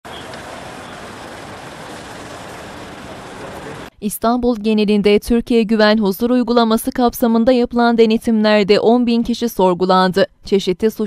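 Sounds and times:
road traffic rushing: 0.0s - 3.9s.

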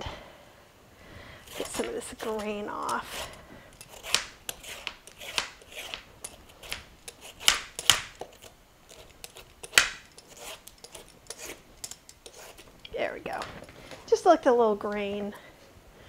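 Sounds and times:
vegetable peeler scraping squash: 1.4s - 13.7s.

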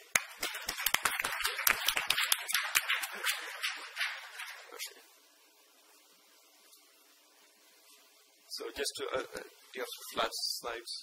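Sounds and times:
audience applauding: 0.1s - 3.9s.

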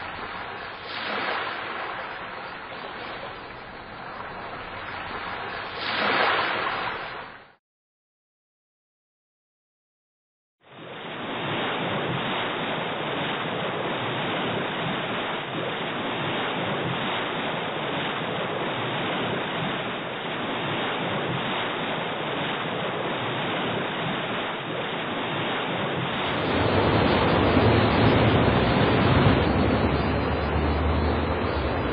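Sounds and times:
sea surf rushing: 0.0s - 7.4s, 10.7s - 31.9s
wind: 0.0s - 7.6s, 10.6s - 31.9s.

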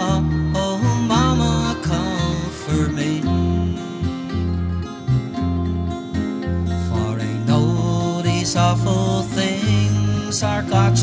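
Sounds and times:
slow ballad guitar and bass: 0.0s - 11.0s.

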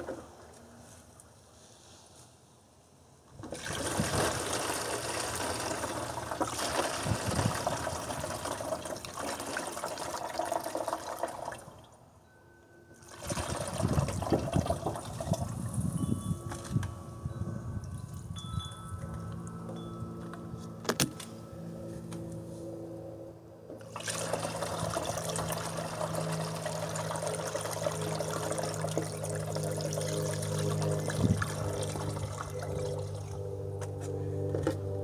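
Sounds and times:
liquid splashing and gurgling: 3.4s - 11.6s, 13.1s - 15.5s, 23.8s - 32.6s
liquid pouring through a funnel: 3.4s - 11.8s, 13.0s - 16.8s, 23.8s - 33.4s
steady ringing tones: 12.0s - 14.1s, 14.8s - 23.7s.

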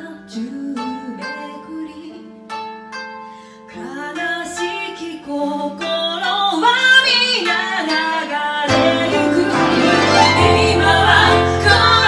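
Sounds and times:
woman singing: 0.0s - 2.4s, 3.7s - 12.0s
plucked koto: 0.0s - 12.0s.

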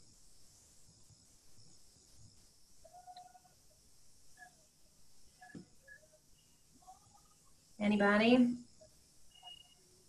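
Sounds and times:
faint chirping tones: 0.0s - 10.0s.

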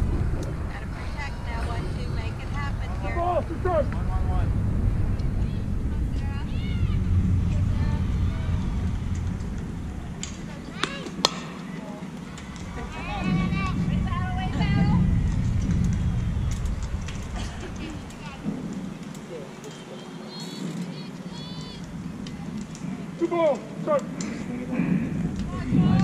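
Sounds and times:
wind rumble on microphone: 0.0s - 19.6s, 20.6s - 26.0s
people shouting and cheering: 5.5s - 15.3s
bat striking ball: 10.2s - 11.7s.

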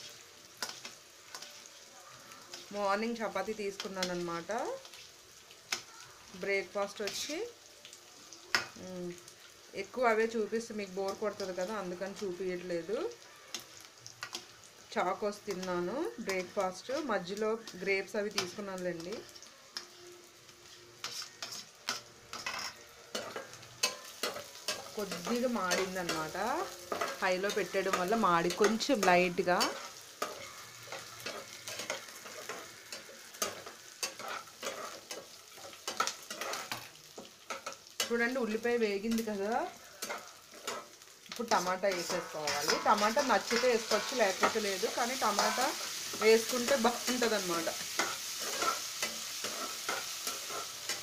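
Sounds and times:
metal spatula scraping in a pan: 0.0s - 7.4s, 20.6s - 51.0s
food sizzling in oil: 0.0s - 51.0s.

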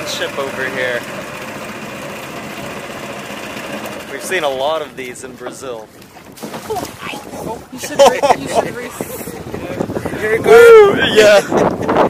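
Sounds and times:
boat engine running: 0.0s - 11.6s.

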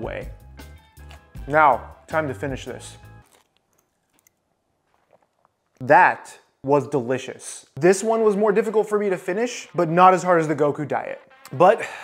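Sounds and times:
background music: 0.0s - 3.3s, 7.8s - 12.0s.

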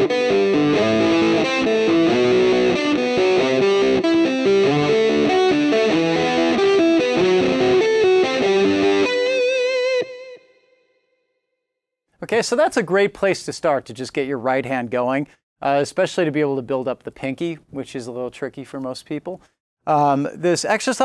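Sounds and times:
distorted electric guitar arpeggios: 0.0s - 10.8s.

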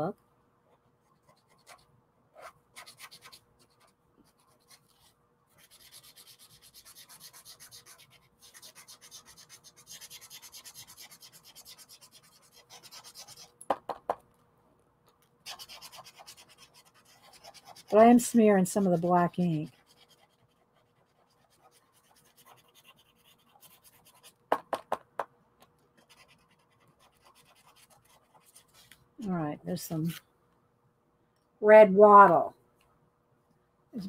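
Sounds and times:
felt marker rubbing on paper: 2.4s - 13.5s, 15.5s - 24.4s, 26.0s - 28.9s.

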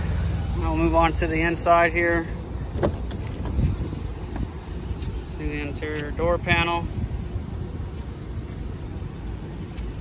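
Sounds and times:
car engine idling: 0.0s - 10.0s
outdoor background noise: 0.0s - 10.0s.

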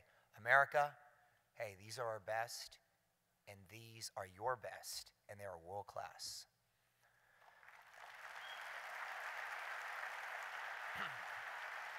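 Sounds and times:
audience applause: 7.4s - 11.9s.

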